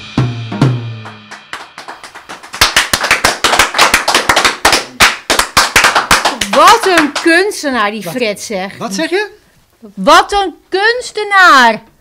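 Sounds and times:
people clapping: 0:00.8 - 0:07.7.

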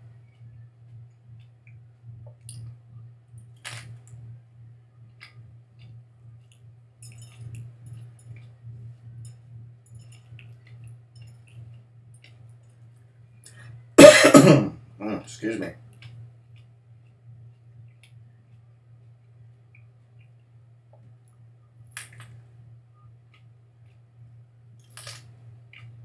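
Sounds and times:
low hum: 0:00.0 - 0:26.0
man coughing: 0:14.0 - 0:14.8.

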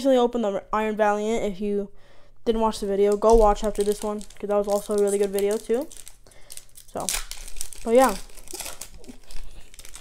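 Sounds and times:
cards rustling: 0:03.0 - 0:10.0
foil wrapper crinkling: 0:03.0 - 0:10.0.

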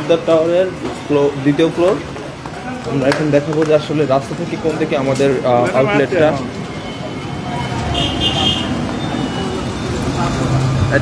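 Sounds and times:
street traffic engines: 0:00.0 - 0:11.0.

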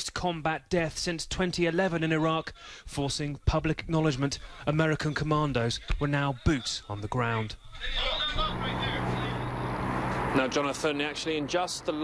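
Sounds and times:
rushing noise: 0:07.8 - 0:11.3.

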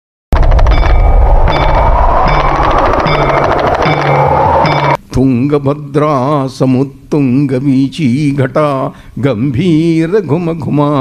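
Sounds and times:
rapid drum roll: 0:00.3 - 0:05.0
short ringing tone: 0:00.4 - 0:05.0.

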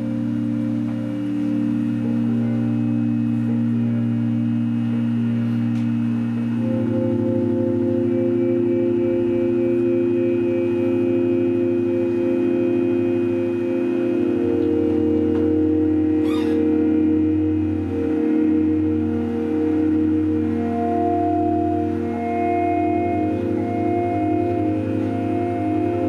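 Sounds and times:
sustained instrumental chords: 0:00.0 - 0:26.0.

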